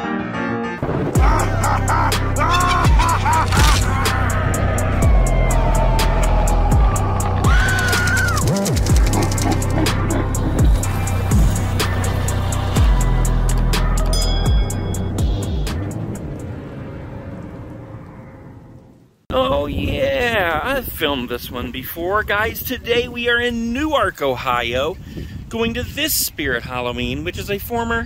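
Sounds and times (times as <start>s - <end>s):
intro music with heavy bass beat: 1.1s - 16.5s
man talking: 19.3s - 28.0s.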